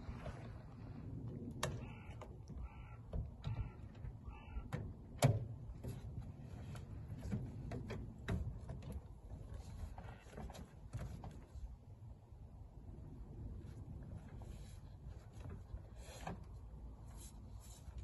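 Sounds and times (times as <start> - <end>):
crow cawing: 1.8 - 4.7.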